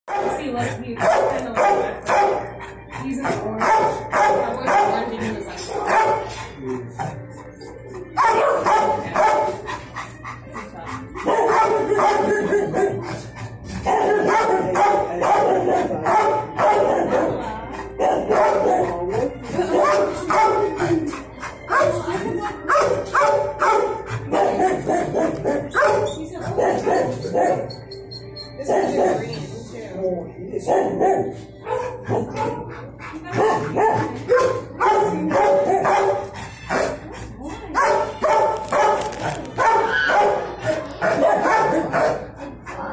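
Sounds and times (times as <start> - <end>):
dogs barking and yipping: 0.1 - 29.5, 30.6 - 42.9.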